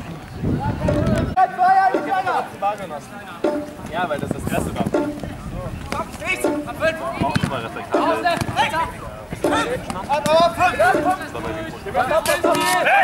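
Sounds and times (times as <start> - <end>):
players shouting: 1.4 - 3.9, 5.9 - 13.0
even beat: 3.4 - 13.0.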